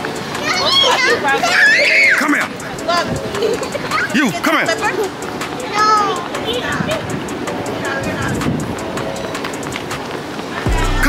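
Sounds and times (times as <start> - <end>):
small children squealing: 0.4 - 2.6.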